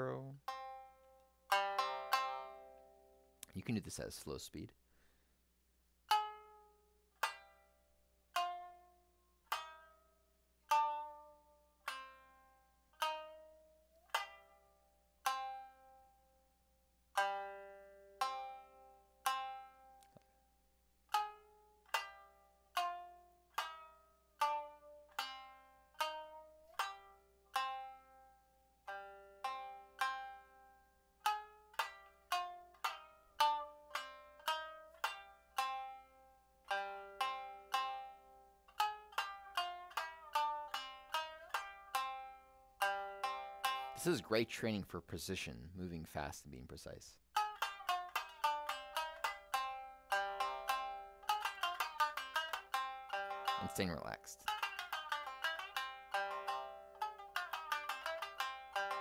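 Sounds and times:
shamisen notes struck: 0.0s - 3.4s, 6.1s - 10.1s, 10.7s - 16.2s, 21.1s - 44.6s, 47.4s - 59.0s.

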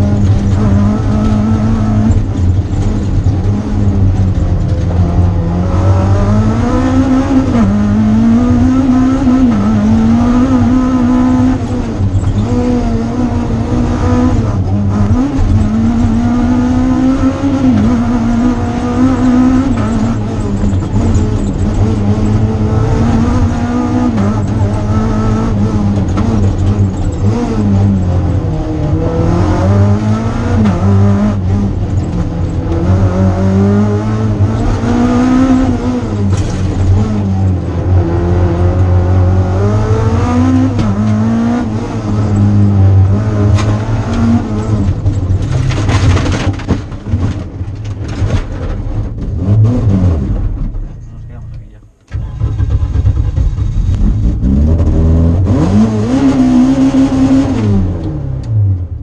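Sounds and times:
rally car engine revving: 0.0s - 59.0s.

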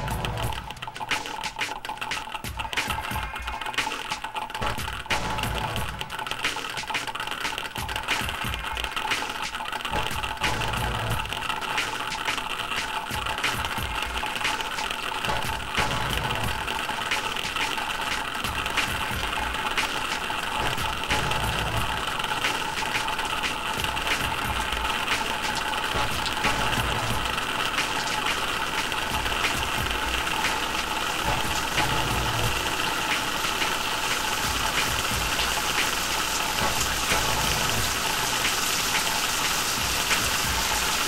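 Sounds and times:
experimental electronic music: 0.0s - 41.0s
faint scattered clicks: 0.2s - 5.2s.

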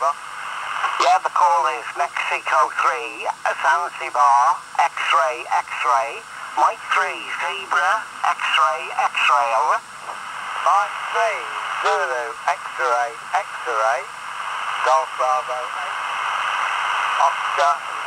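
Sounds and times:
radio band hiss: 0.0s - 18.0s
radio operator voice: 0.0s - 18.0s.

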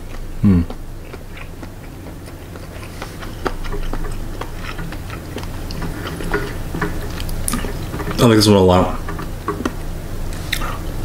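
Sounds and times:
person chewing crunchy food: 0.0s - 11.0s.

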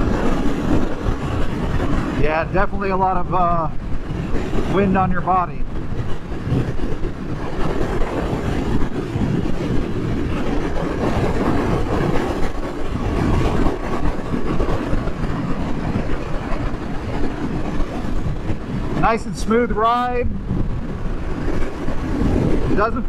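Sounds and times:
wind buffeting microphone: 0.0s - 23.0s.

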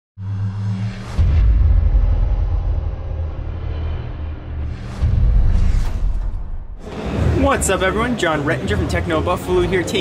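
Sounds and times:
deep rumble: 0.2s - 7.5s.

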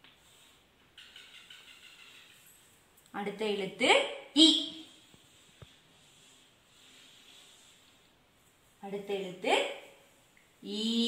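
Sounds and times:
chalk scratching on blackboard: 4.8s - 8.8s.

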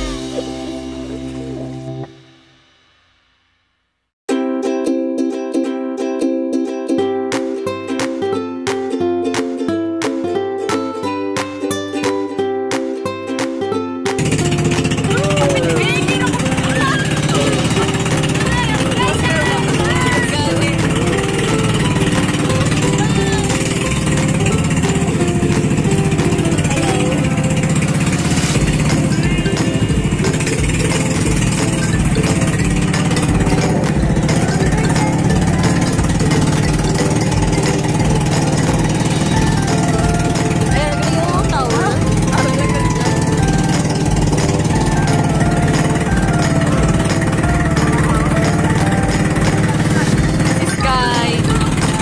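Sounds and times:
ukulele music: 0.0s - 2.2s, 4.3s - 52.0s
boat engine droning: 14.2s - 52.0s.

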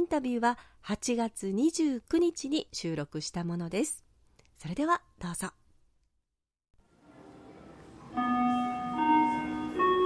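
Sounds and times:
bell-like chime melody: 8.1s - 10.0s.

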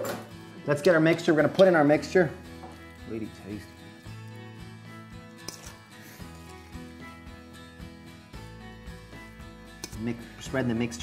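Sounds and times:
background music sustained notes: 0.0s - 11.0s.

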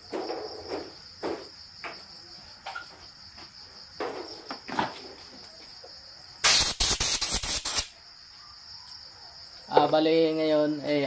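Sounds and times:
knocks and rustles of movement: 0.0s - 5.9s
crickets chirping: 0.0s - 11.0s.

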